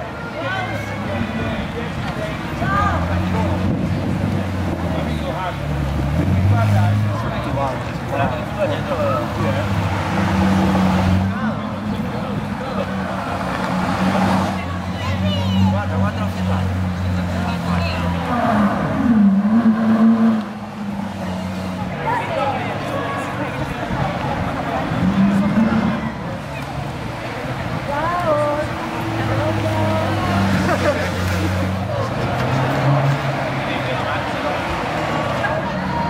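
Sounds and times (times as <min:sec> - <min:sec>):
crowd voices: 0:00.0 - 0:36.0
sports car engines revving: 0:00.9 - 0:36.0.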